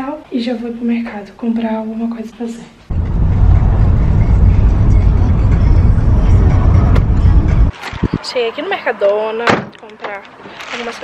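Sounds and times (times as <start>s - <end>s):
car road and wind noise: 2.9s - 9.7s
music playing: 3.0s - 7.8s.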